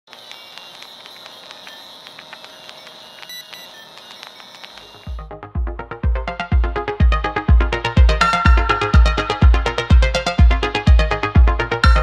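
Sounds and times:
old film crackle: 0.1 - 5.1.

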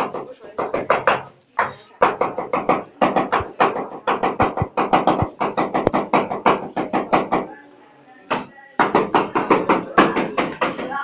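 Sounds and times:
cleaver chopping on wooden board: 0.7 - 7.3.

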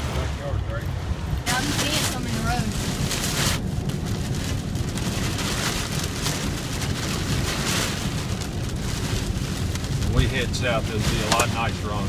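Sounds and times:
truck driving rumble: 0.0 - 12.0
rain and hail on truck roof: 1.2 - 12.0.

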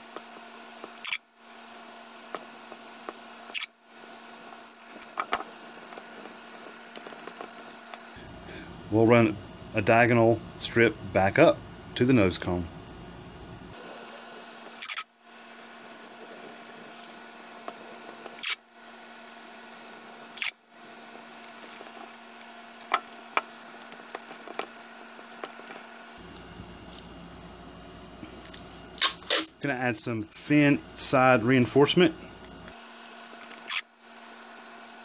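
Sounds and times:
faint steady hum: 0.0 - 35.0
masking tape ripping off roll: 2.3 - 3.7, 14.0 - 15.1, 16.0 - 18.6, 20.3 - 20.6, 21.4 - 26.0, 29.0 - 29.6, 33.4 - 33.9.

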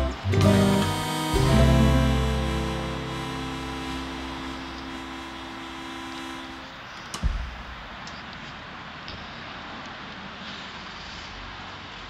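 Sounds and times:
acoustic guitar music: 0.0 - 6.7
sharp thump: 7.2 - 7.7.

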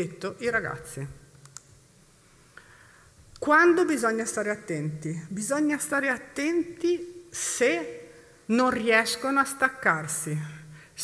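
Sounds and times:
person speaking: 0.0 - 1.3, 3.4 - 10.6.

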